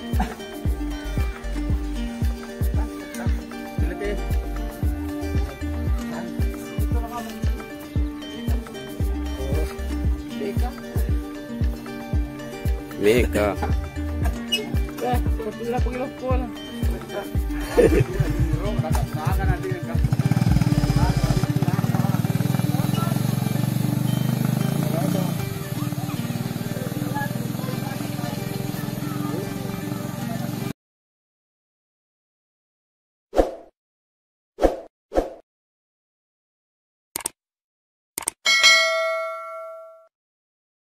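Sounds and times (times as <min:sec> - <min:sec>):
motor tricycle engine pulsing: 0:17.6 - 0:30.7
quick double clicks: 0:37.2 - 0:37.4, 0:38.2 - 0:38.4
bell ding: 0:38.5 - 0:40.1.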